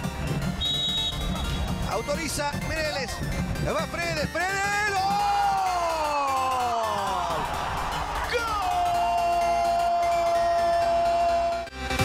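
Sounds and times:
background music: 0.0 - 12.0
commentator's long shout: 8.2 - 11.7.

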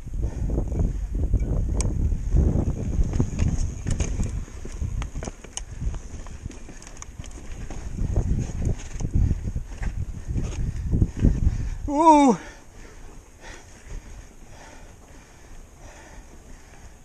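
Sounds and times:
bike tyres rumbling on rock: 0.1 - 16.8
bike clicks and knocks: 3.0 - 8.0, 8.6 - 10.6.

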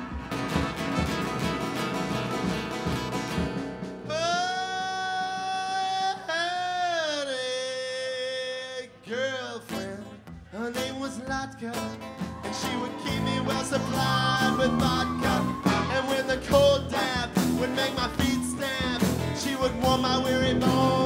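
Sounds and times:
acoustic guitar strumming: 0.0 - 7.0, 9.1 - 21.0
person singing: 4.1 - 21.0
electric bass: 11.9 - 21.0.

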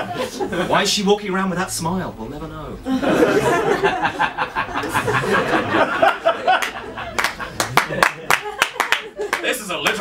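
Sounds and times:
audience laughing: 0.0 - 0.8, 2.8 - 10.0
audience clapping: 6.4 - 10.0.

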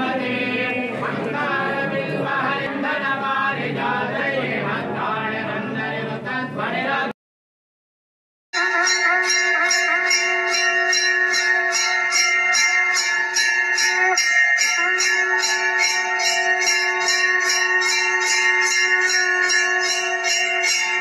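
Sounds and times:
temple bell rung rapidly: 8.6 - 21.0.

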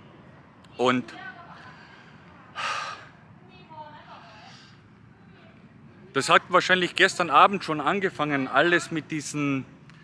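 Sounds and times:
man breathing in: 1.7 - 3.2.

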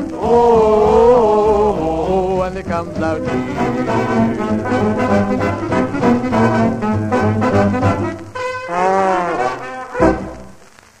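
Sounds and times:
dance band with brass playing: 2.9 - 10.6.

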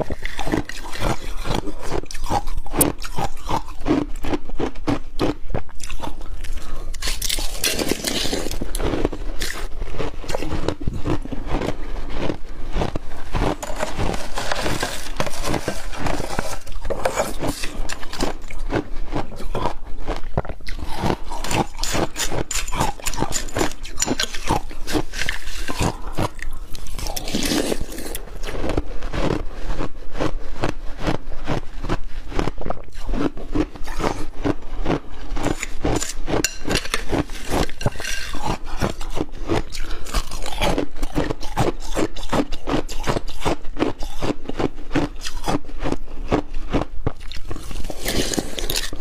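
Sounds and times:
metal spoon scraping ice: 0.0 - 4.4, 5.8 - 19.7, 20.7 - 28.5, 34.9 - 45.9, 47.4 - 49.0
crunching and chewing ice: 0.0 - 49.0.

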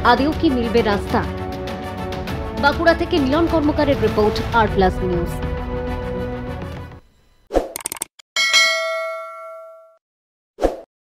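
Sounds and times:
quick clicks: 7.6 - 8.2
bell-like ding: 8.4 - 10.0.

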